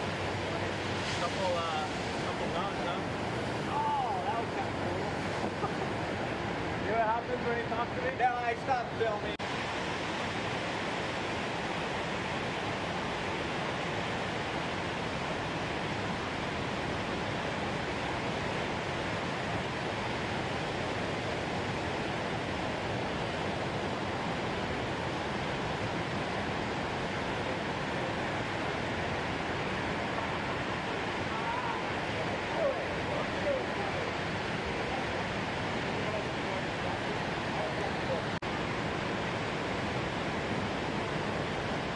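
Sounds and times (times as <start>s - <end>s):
ocean surf rushing: 0.0s - 41.9s.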